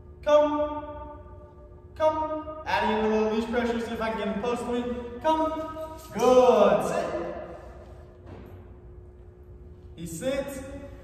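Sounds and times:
spoken word echoing: 0.0 - 7.9, 9.9 - 11.0
faint steady hum: 0.0 - 11.0.

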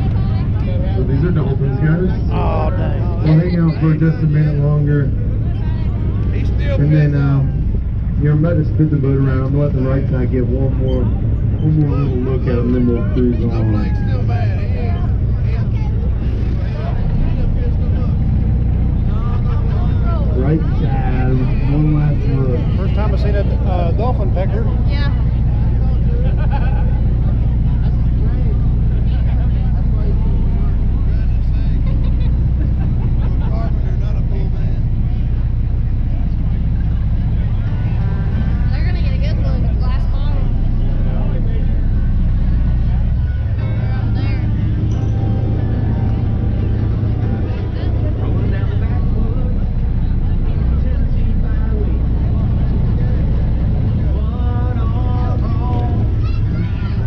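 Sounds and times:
boat engine humming: 0.0 - 57.0
voices: 0.0 - 57.0.

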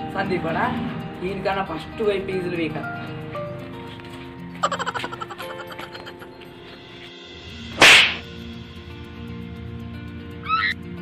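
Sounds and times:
faint background music: 0.0 - 11.0
rising chirps: 4.7 - 6.8, 10.4 - 10.8
whoosh sound effect: 7.8 - 8.2.

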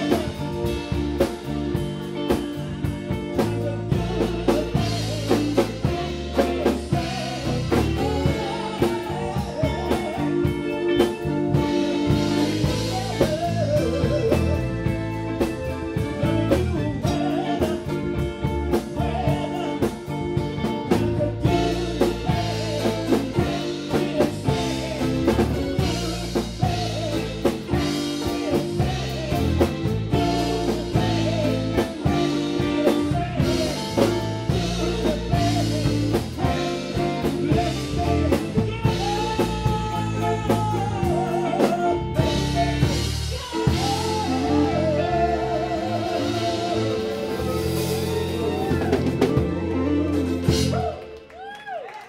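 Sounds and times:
steady drum beat: 0.0 - 51.0
man singing: 0.0 - 51.2
electric guitar: 0.0 - 52.0
keyboard: 0.0 - 52.0.

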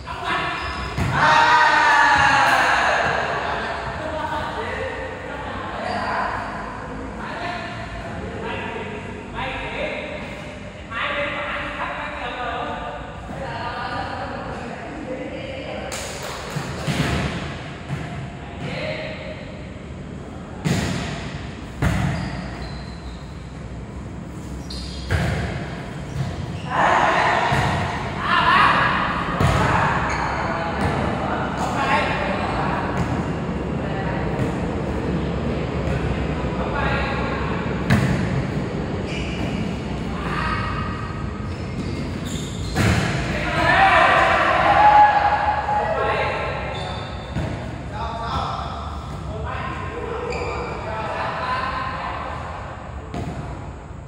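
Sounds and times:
players shouting: 1.1 - 3.4, 43.3 - 46.8.

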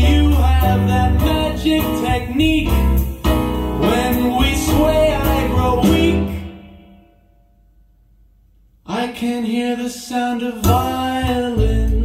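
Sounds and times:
man singing: 0.0 - 3.2, 3.8 - 6.7, 8.8 - 12.0
jazz-pop ballad over loudspeakers: 0.0 - 6.5, 10.6 - 12.0.

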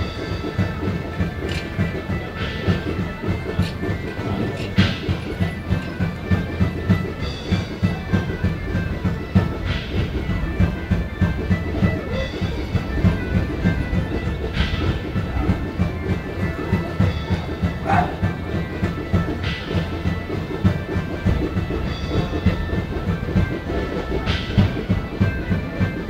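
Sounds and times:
drums beating quickly: 0.0 - 26.0
pipes drone: 0.0 - 26.0.

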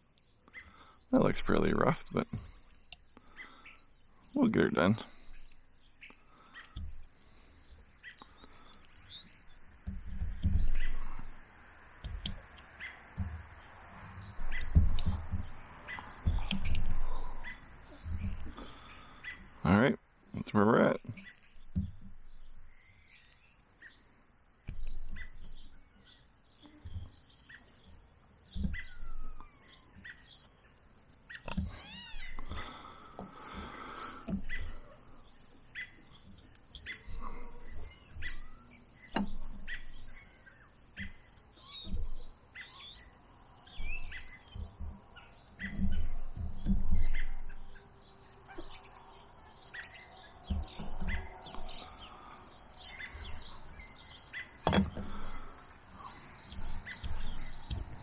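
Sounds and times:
birds chirping: 0.0 - 58.0
knife carving a stick: 5.4 - 18.9, 54.6 - 58.0.

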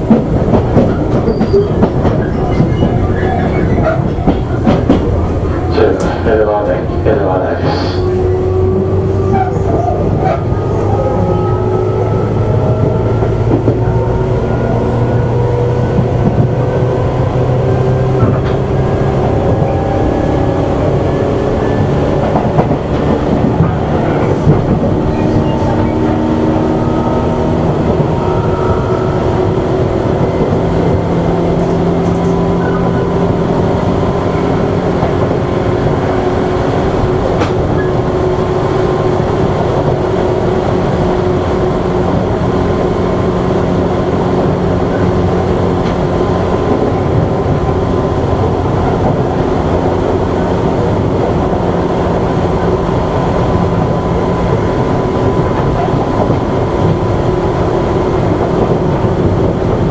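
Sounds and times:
train running rumble: 0.0 - 59.9.

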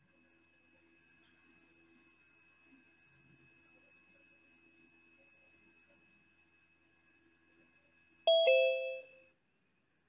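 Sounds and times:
two-note electronic chime: 8.3 - 9.1.

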